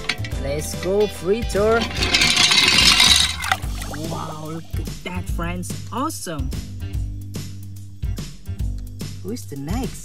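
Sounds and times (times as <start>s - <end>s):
background music: 0.0s - 10.0s
toy splashing into water: 2.9s - 4.9s.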